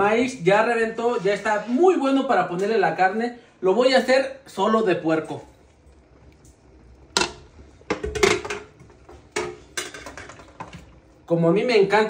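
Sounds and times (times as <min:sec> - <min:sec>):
metal pot and lid clanking: 0:07.2 - 0:10.8.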